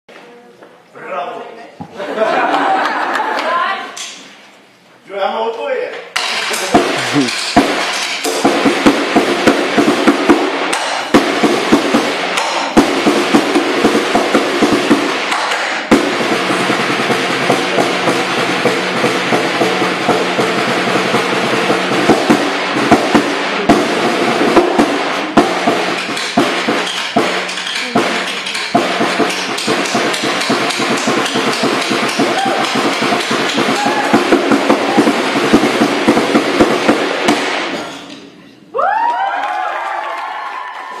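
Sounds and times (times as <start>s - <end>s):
snare drums rolling: 6.1s - 38.3s.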